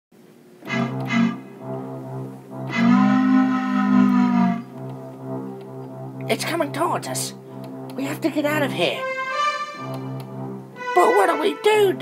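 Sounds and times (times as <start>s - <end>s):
deep locomotive whistle: 0.6s - 7.8s, 8.9s - 12.0s
low musical drone: 0.6s - 12.0s.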